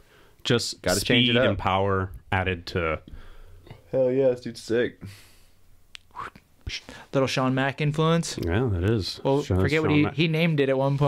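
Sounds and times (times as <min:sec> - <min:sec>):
people talking: 0:00.5 - 0:03.1, 0:03.8 - 0:05.1, 0:06.2 - 0:11.0.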